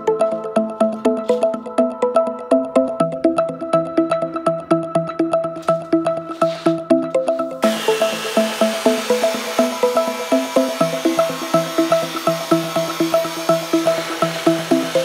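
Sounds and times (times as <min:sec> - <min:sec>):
background music repeating notes: 0:00.0 - 0:15.0
chop saw cutting steel: 0:07.6 - 0:15.0.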